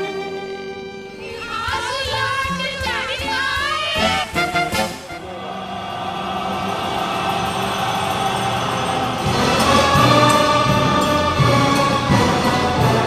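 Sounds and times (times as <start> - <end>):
orchestra playing string chords: 0.0 - 1.5, 4.0 - 13.0.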